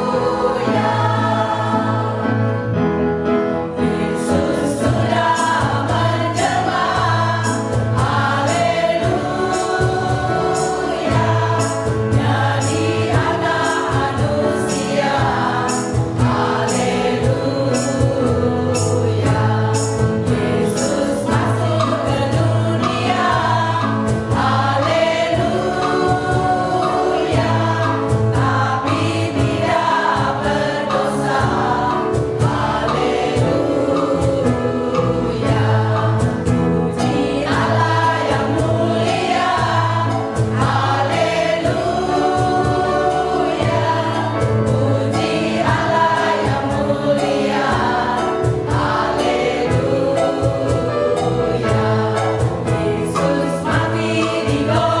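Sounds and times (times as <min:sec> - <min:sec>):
mixed choir singing gospel: 0:00.0 - 0:55.0.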